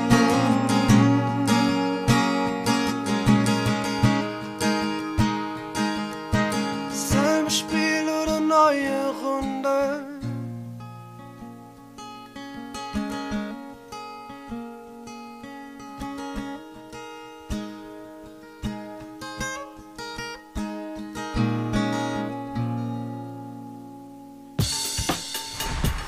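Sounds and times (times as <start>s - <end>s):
acoustic guitar playing: 0.0s - 26.0s.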